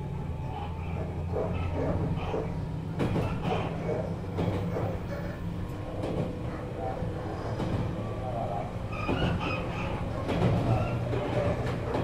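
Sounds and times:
train motors and wheels rumbling: 0:00.0 - 0:12.0.

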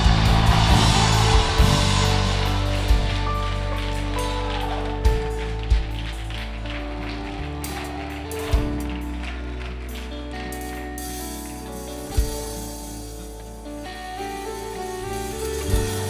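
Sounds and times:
bass drum hits: 0:00.0 - 0:04.5
keyboard and guitar chords: 0:00.0 - 0:16.0.

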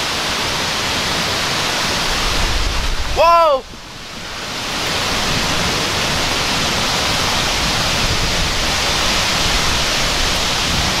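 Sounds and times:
heavy rain: 0:00.0 - 0:11.0
strong wind in trees: 0:00.0 - 0:11.0
wind buffeting microphone: 0:00.8 - 0:11.0.

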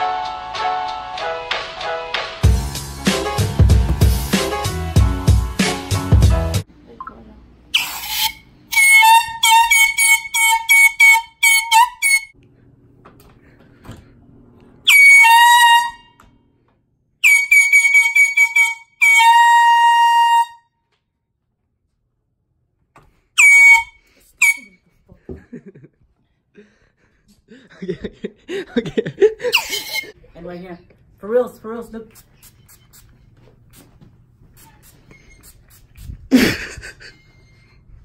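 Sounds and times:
high-pitched horn-like tones: 0:07.8 - 0:12.3, 0:14.9 - 0:16.2, 0:17.2 - 0:20.7, 0:23.4 - 0:24.9.

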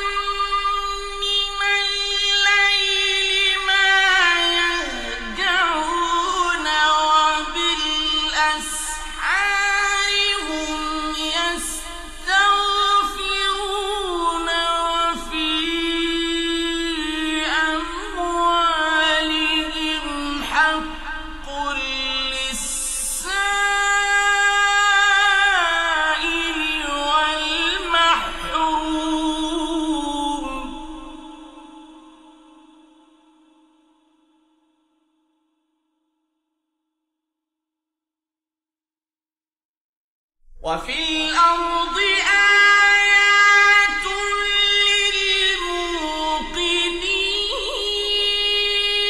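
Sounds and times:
man chanting recitation: 0:00.0 - 0:33.0, 0:40.6 - 0:49.0.

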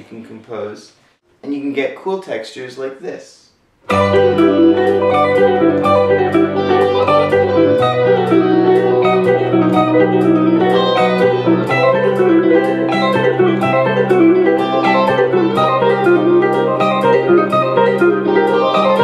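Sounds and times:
fast electric guitar arpeggios: 0:03.9 - 0:19.0
second guitar harmony line: 0:03.9 - 0:19.0
sustained low chords: 0:03.9 - 0:19.0.

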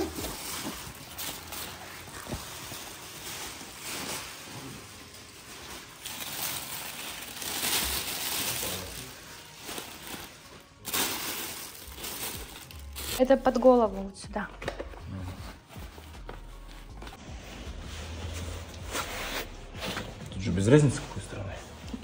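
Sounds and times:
plastic and tissue paper crinkling: 0:00.0 - 0:13.3.

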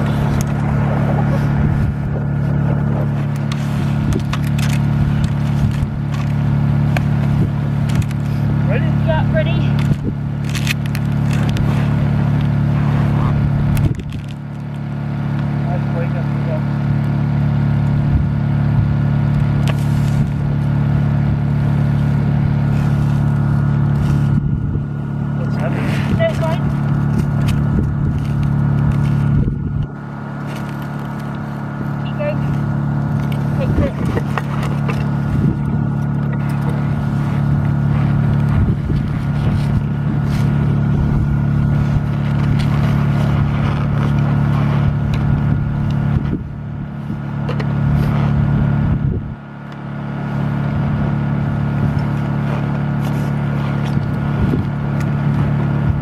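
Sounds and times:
low motor hum: 0:00.0 - 0:56.0.

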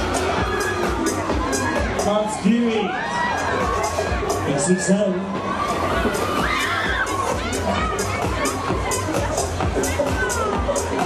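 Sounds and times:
crowd cheering: 0:00.0 - 0:11.0
fairground music: 0:00.0 - 0:11.0
riders screaming: 0:05.5 - 0:07.4.

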